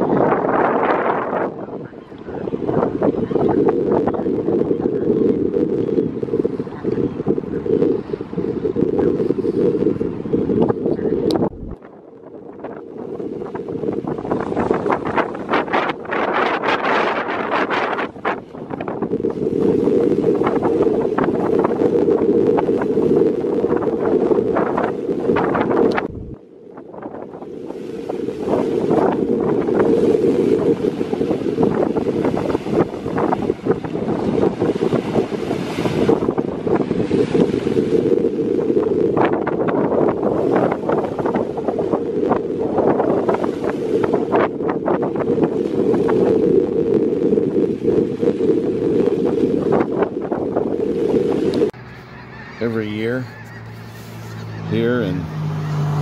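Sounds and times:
waves washing against shore: 0.0 - 56.0
wind buffeting microphone: 0.0 - 56.0.

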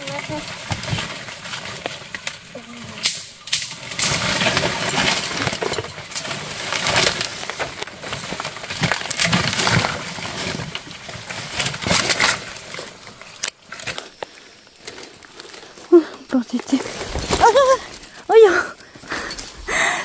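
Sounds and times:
leaves and branches rustling: 0.0 - 20.0
stems cracking: 0.0 - 20.0.

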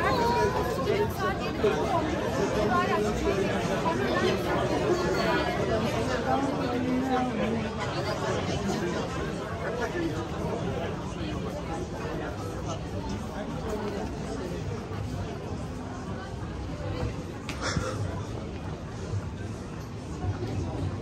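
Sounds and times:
chatter of many people: 0.0 - 21.0.

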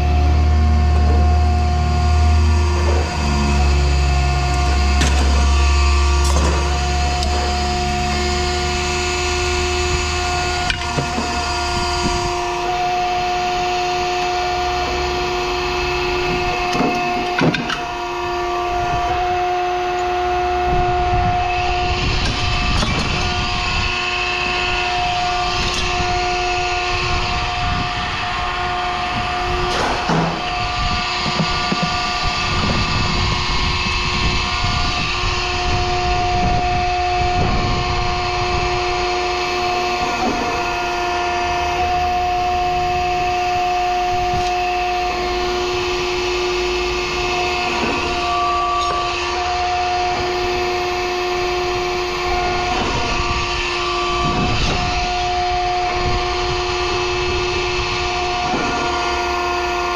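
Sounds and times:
machine motor humming: 0.0 - 59.9
metal clanks and scrapes: 4.5 - 5.6, 6.2 - 8.2, 25.2 - 26.3.

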